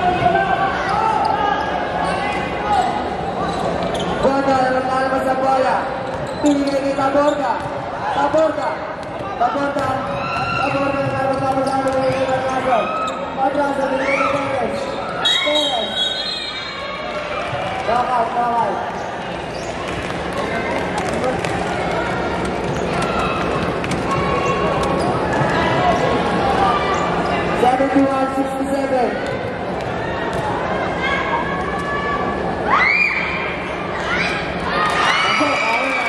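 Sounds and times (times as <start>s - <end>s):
people shouting in a gym: 0.0s - 5.8s, 7.1s - 18.8s, 19.8s - 27.6s, 28.3s - 36.0s.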